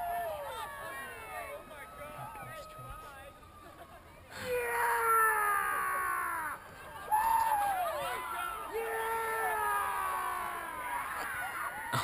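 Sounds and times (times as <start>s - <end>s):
group of people yelling: 4.4s - 12.0s.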